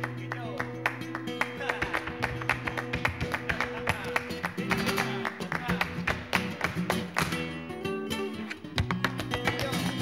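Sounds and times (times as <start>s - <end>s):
flamenco guitar playing: 0.0s - 10.0s
dancer's footwork taps: 8.7s - 10.0s.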